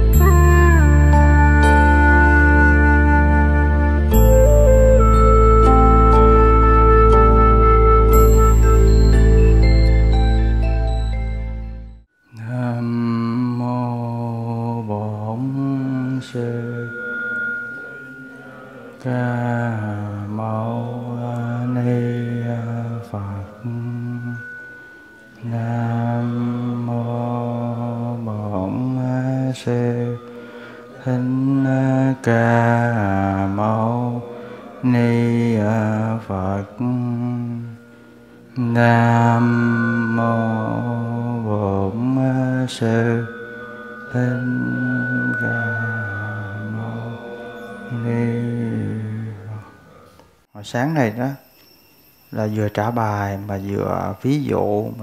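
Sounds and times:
struck bell tones: 4.1s - 6.6s, 8.1s - 12.0s, 12.9s - 55.0s
man chanting: 12.3s - 17.0s, 18.4s - 24.5s, 25.4s - 37.8s, 38.5s - 51.5s, 52.3s - 55.0s.

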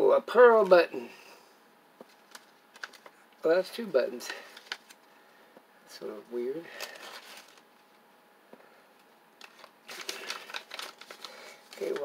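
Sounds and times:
paper rustling and crinkling: 2.0s - 3.2s, 4.3s - 5.1s, 6.8s - 7.8s, 9.4s - 12.0s.

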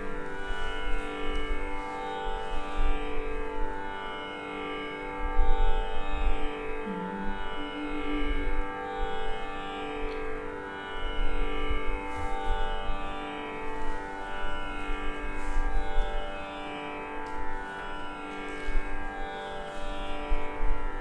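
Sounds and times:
tanpura drone: 0.0s - 21.0s.

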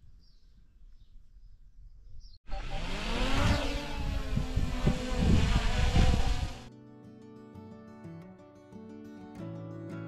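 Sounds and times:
drone propellers buzzing: 2.5s - 6.7s.

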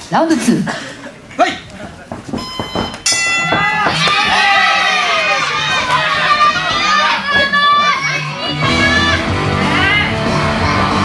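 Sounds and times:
people shouting: 3.3s - 11.0s
music with steady bass: 8.5s - 11.0s.

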